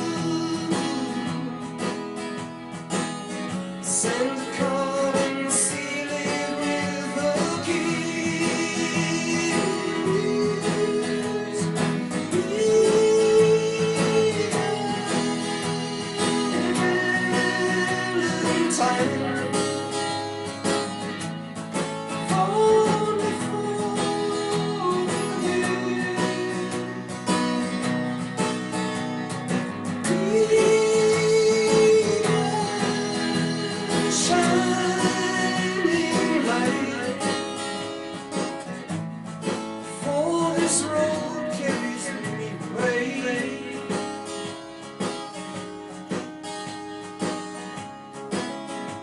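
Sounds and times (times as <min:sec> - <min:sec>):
man singing: 0:00.0 - 0:02.2, 0:03.6 - 0:21.1, 0:22.1 - 0:28.0, 0:29.9 - 0:38.7, 0:39.8 - 0:45.2
strummed acoustic guitar: 0:00.0 - 0:49.0.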